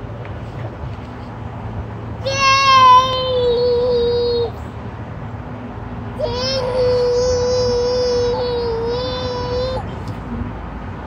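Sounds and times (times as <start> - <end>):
toddler holding high vocal note: 2.2 - 4.6, 6.2 - 9.9.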